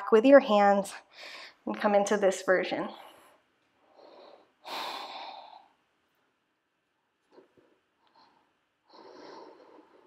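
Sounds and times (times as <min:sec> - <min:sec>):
woman breathing: 0:01.0 - 0:01.7, 0:02.9 - 0:05.9, 0:07.2 - 0:10.0.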